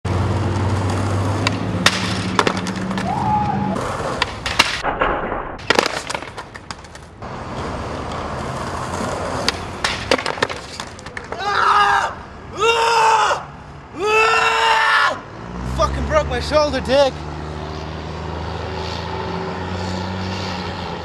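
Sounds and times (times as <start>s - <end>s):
skateboard wheels rolling on concrete: 0.1s - 12.8s
skateboard clacking on pavement: 0.5s - 3.2s, 3.8s - 11.6s.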